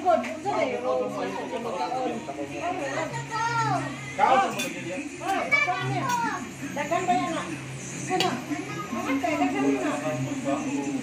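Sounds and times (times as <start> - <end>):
voices chattering: 0.0 - 11.0.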